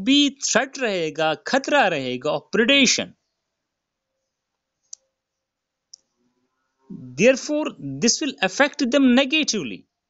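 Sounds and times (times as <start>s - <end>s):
faint sharp clicks: 4.9s - 5.1s.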